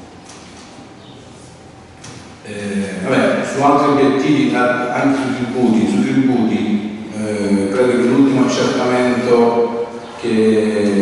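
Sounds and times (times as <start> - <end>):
man speaking in a slow monotone: 2.4 - 11.0.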